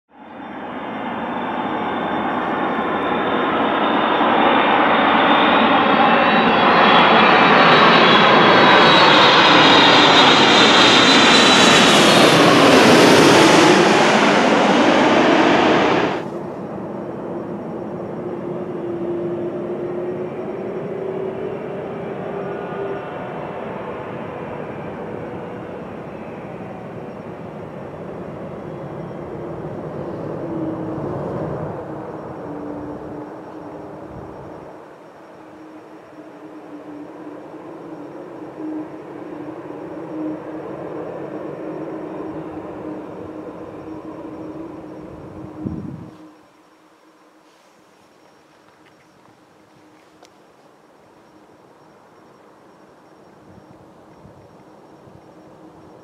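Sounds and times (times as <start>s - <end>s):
distant jet rumble: 0.1s - 56.0s
jet engines passing overhead: 0.1s - 56.0s.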